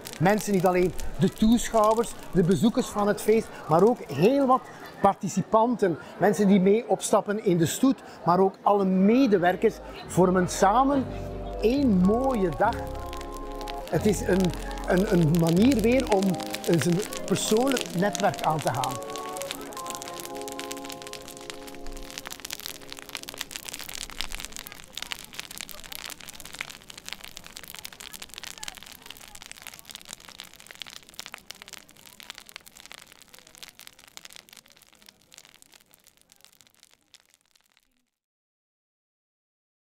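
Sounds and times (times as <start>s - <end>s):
bonfire crackling and popping: 0.0s - 5.0s, 9.1s - 38.2s
held musical chord: 10.2s - 13.0s.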